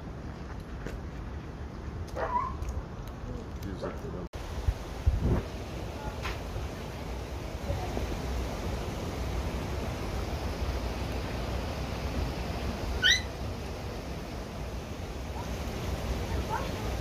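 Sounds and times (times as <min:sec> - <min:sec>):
short high-pitched squeak: 0:13.0 - 0:13.3.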